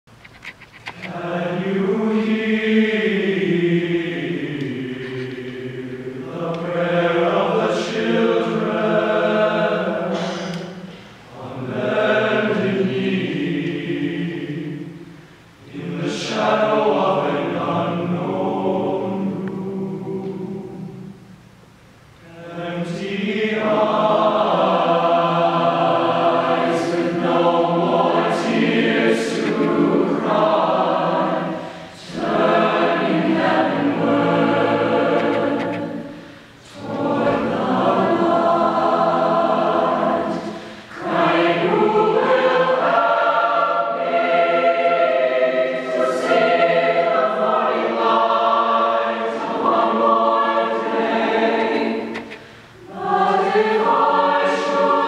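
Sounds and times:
mixed choir singing: 0.9s - 21.4s, 22.2s - 55.0s.

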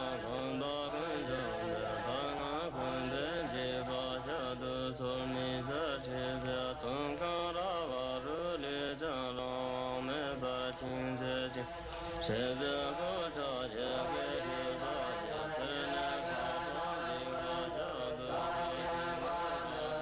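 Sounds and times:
monks chanting: 0.0s - 20.0s.

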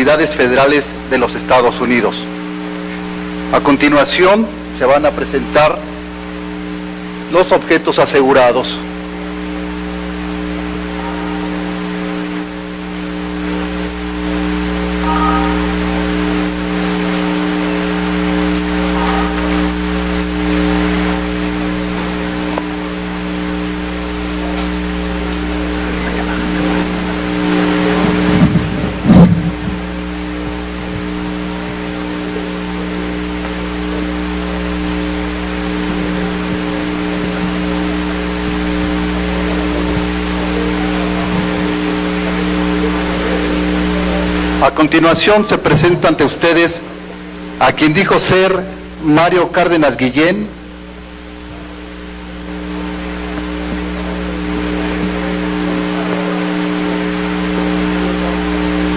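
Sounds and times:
electrical hum: 0.0s - 58.9s.

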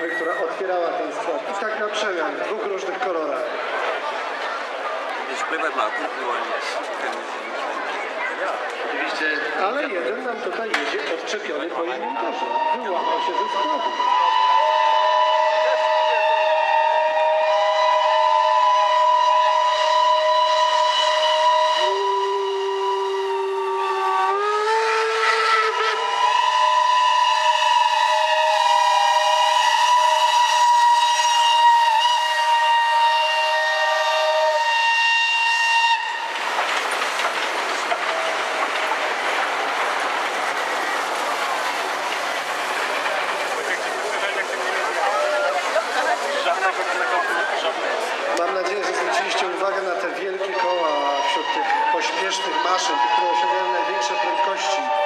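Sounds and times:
steam locomotive whistles: 0.0s - 0.7s, 12.0s - 36.7s, 50.4s - 55.0s.

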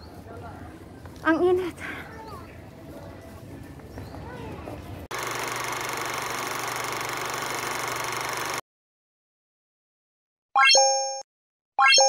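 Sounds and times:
synthetic pop and chime effect: 11.8s - 12.0s.

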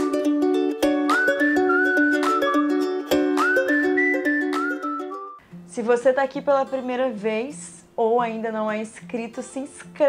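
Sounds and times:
whistled tune: 0.0s - 5.4s
plucked-string chords: 0.0s - 5.9s.

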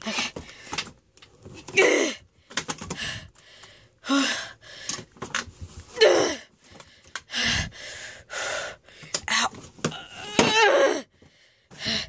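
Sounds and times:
straining huffs and gasps: 2.4s - 9.7s.

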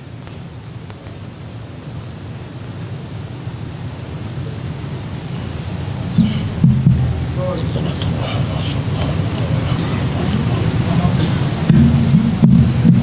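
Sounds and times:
low rumble from sound system: 0.0s - 13.0s.

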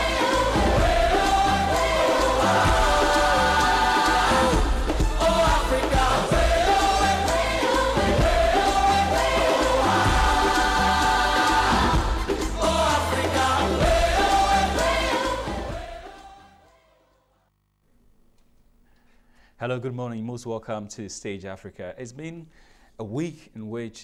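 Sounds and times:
choir-like vocal melody: 0.0s - 17.4s.

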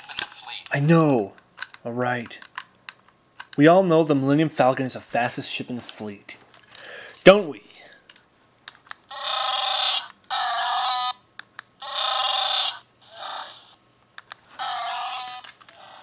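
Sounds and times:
tinny electronic toy sounds: 9.1s - 11.2s, 11.8s - 13.8s, 14.6s - 16.0s.

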